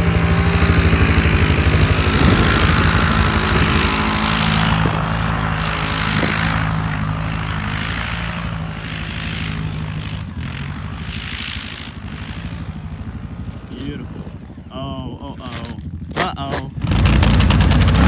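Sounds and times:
atv engine at high revs: 0:00.0 - 0:18.0.

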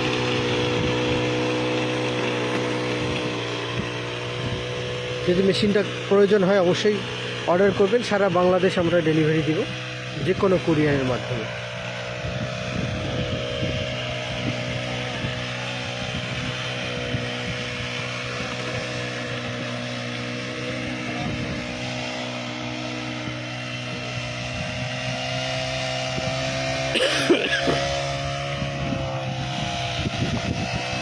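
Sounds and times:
brush cutter engine running: 0:00.0 - 0:31.0.

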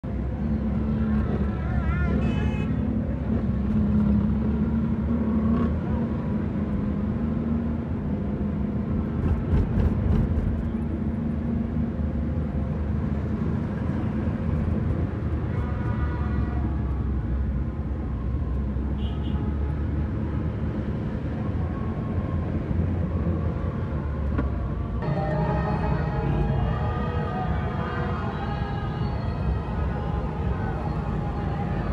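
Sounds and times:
car engine and road noise: 0:00.0 - 0:31.9
surrounding traffic: 0:00.0 - 0:31.9.

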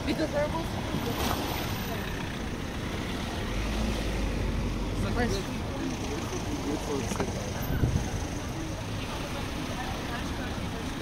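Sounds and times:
car traffic noise: 0:00.0 - 0:11.0
indistinct pedestrian chatter: 0:00.0 - 0:11.0.

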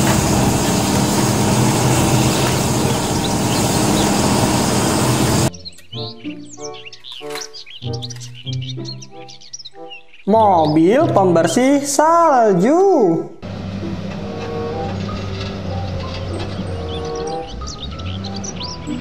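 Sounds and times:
excavator diesel engine: 0:00.0 - 0:05.5, 0:13.4 - 0:19.0
background music: 0:00.0 - 0:19.0
bird-like chirps: 0:00.7 - 0:11.1, 0:16.0 - 0:19.0.

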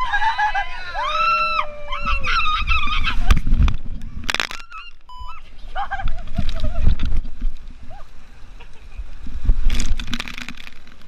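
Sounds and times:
woman screaming: 0:00.6 - 0:03.2.

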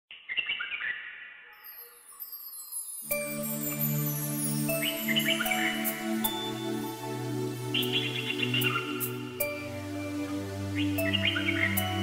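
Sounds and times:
birds chirping: 0:00.1 - 0:12.0
high shimmering falling sweep: 0:01.8 - 0:12.0.

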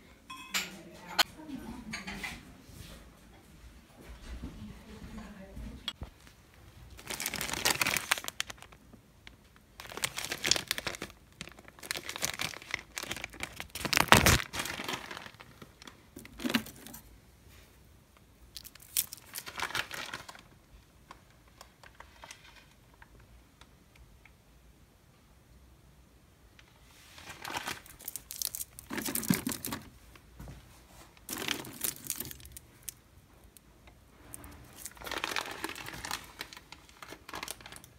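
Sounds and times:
plastic wrapping crinkling: 0:06.2 - 0:17.1, 0:18.5 - 0:23.0, 0:27.0 - 0:30.2, 0:31.1 - 0:33.6, 0:34.2 - 0:37.9.

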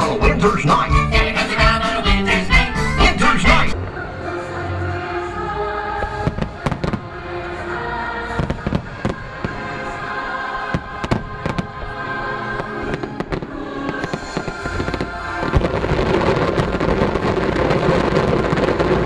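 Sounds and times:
show music with held notes: 0:00.0 - 0:15.6
fireworks bursting with sharp bangs: 0:06.0 - 0:07.2, 0:08.3 - 0:19.0.

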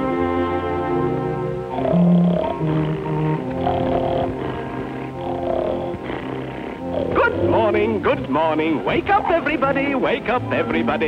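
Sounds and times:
cartoon orchestral music: 0:00.0 - 0:11.0
dog snoring: 0:01.7 - 0:08.5.

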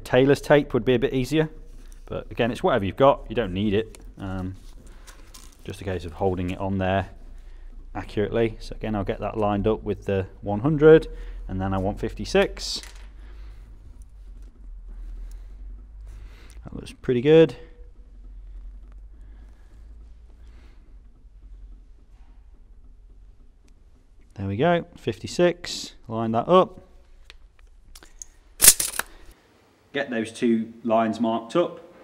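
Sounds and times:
steady low hum: 0:00.0 - 0:29.8
tape measure retracting: 0:28.0 - 0:29.2.

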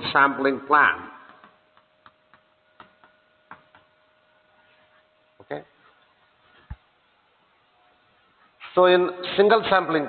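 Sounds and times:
faint steady hum: 0:00.0 - 0:10.0
chalk ticking on chalkboard: 0:01.3 - 0:03.9.

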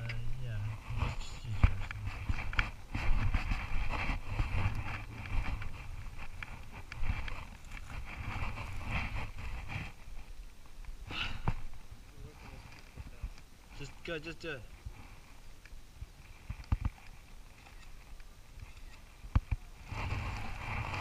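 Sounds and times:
wind rumble on microphone: 0:00.0 - 0:13.4, 0:14.7 - 0:21.0
footsteps on gravel: 0:01.1 - 0:10.1.

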